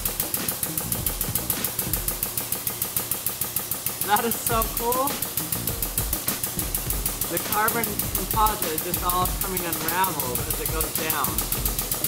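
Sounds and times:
low hum: 0:00.0 - 0:02.6, 0:04.4 - 0:12.0
rapid ticking: 0:00.0 - 0:12.0.

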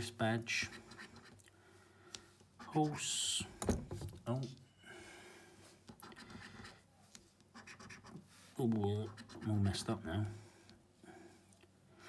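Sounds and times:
coin scratching scratchcard: 0:07.5 - 0:08.2, 0:09.0 - 0:09.9.

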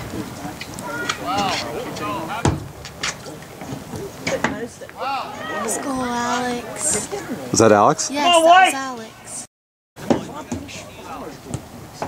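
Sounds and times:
people shouting: 0:00.8 - 0:02.4, 0:05.0 - 0:06.8, 0:08.1 - 0:09.0.

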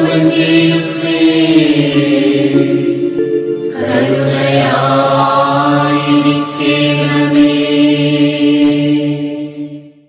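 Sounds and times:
devotional chant: 0:00.0 - 0:10.0.

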